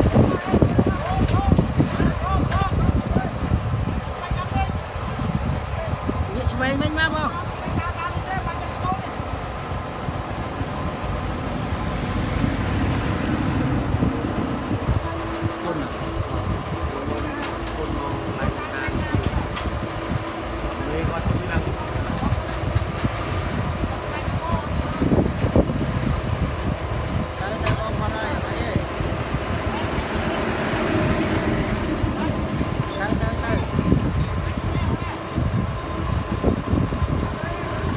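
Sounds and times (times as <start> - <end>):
diesel engine running under load: 0.0 - 37.9.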